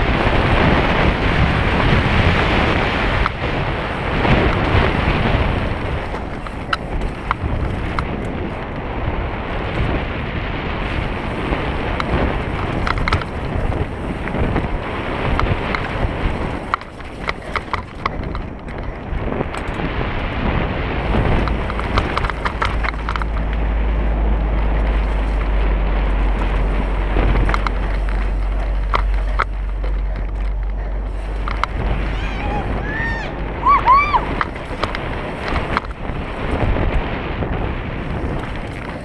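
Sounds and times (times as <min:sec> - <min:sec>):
bike clicks and rattles: 0:00.0 - 0:32.8, 0:33.9 - 0:39.0
bike tyre noise: 0:00.0 - 0:39.0
wind rushing over microphone: 0:00.0 - 0:39.0.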